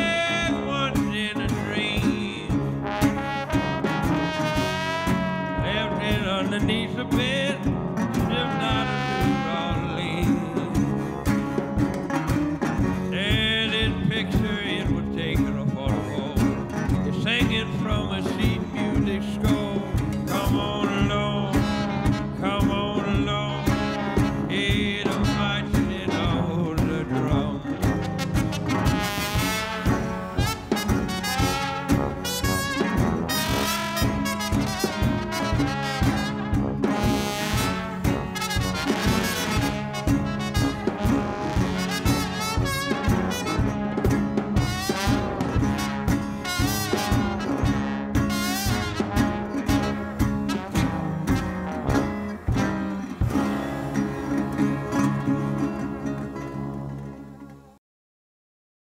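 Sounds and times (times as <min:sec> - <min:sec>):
small band playing blues: 0:00.0 - 0:57.8.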